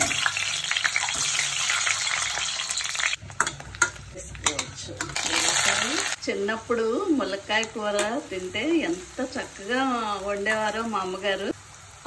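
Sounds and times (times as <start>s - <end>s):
hot oil sizzling and spitting: 0.0s - 12.0s.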